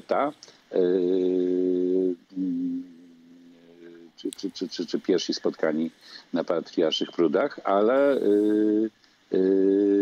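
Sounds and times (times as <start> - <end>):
man humming hesitation sound: 0.0 - 5.0, 7.7 - 10.0.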